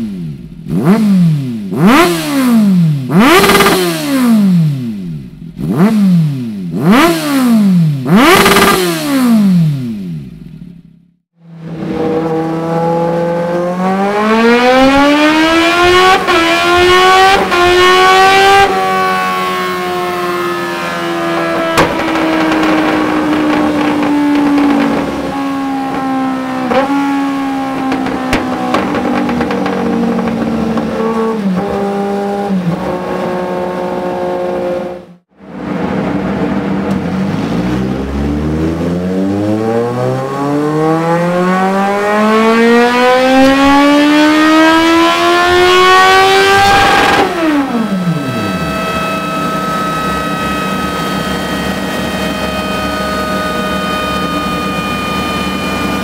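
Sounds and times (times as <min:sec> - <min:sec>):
motorcycle engine revving: 0:00.0 - 0:56.0
motorcycle engine under load: 0:00.0 - 0:56.0.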